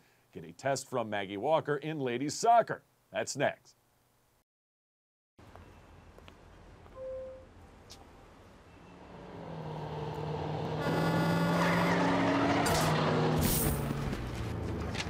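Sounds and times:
short beep: 6.9s - 7.5s
truck driving past: 8.5s - 15.0s.

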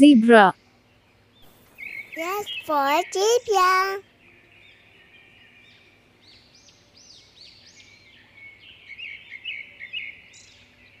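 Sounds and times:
birds chirping: 0.5s - 11.0s.

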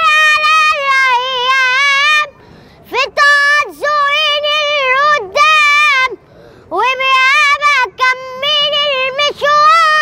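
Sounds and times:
boy singing with vibrato: 0.0s - 10.0s.

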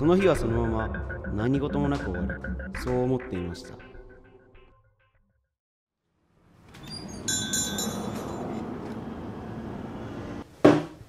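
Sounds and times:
street noise: 6.6s - 10.7s
door entry chime jingle: 6.7s - 8.6s.

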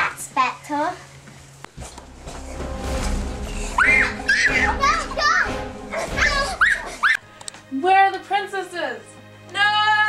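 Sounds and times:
low held pitched tone: 1.8s - 7.1s.

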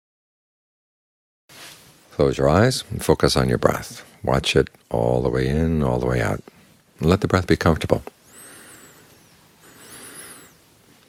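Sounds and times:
soft breaths: 6.4s - 7.0s, 8.1s - 11.0s.

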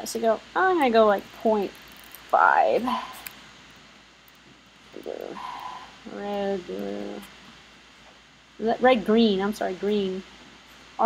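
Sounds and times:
person speaking: 0.0s - 3.3s, 5.0s - 7.3s, 8.6s - 10.2s.

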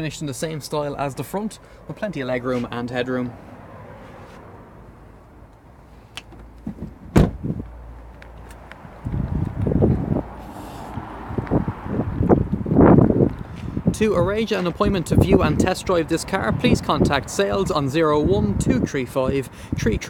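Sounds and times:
handling noise on microphone: 2.4s - 2.8s, 5.9s - 10.0s
car door slamming: 6.2s - 7.6s.

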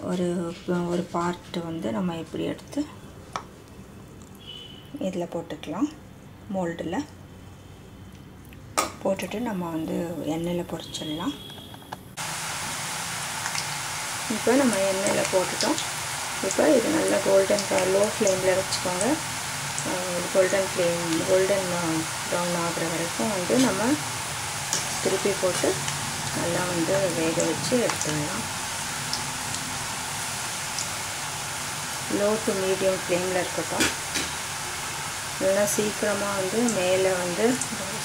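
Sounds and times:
deep-frying sizzle in oil: 12.2s - 38.0s
person talking: 14.3s - 15.8s, 16.4s - 19.2s, 19.8s - 24.0s, 25.0s - 25.8s, 26.4s - 28.4s.

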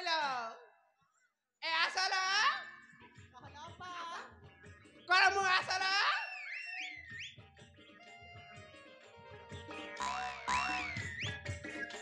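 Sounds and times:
electronic whistle-like pitch glides: 6.1s - 7.4s, 9.8s - 12.0s.

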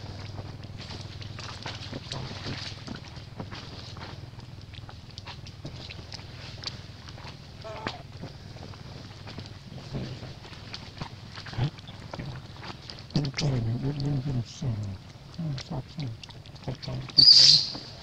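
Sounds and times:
steady low hum: 0.0s - 18.0s
wavering high animal call: 7.6s - 8.1s, 17.2s - 18.0s.

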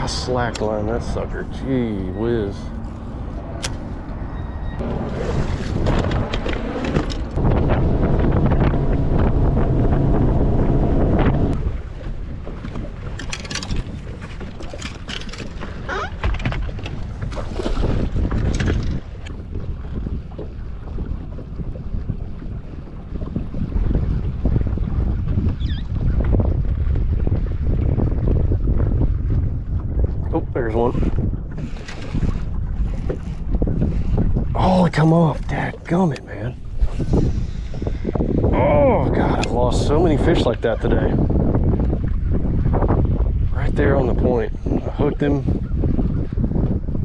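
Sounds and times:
boat motor hum: 0.0s - 47.0s
water noise: 0.0s - 47.0s
wind buffeting microphone: 0.0s - 47.0s.

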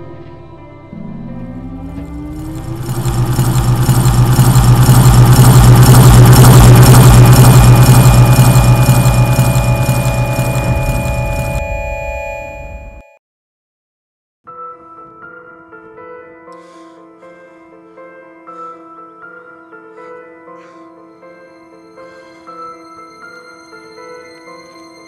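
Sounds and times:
low synth drone: 0.7s - 13.0s
held synth tones: 1.0s - 13.1s
pulsing rush of noise: 1.8s - 11.6s.

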